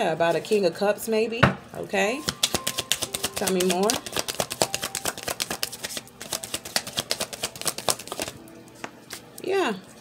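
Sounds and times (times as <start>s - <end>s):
cards being shuffled: 2.2s - 8.4s.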